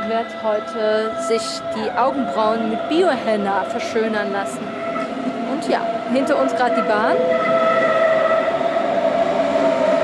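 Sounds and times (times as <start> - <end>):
electric train whine: 0.0 - 10.0
train wheels on rails: 0.0 - 10.0.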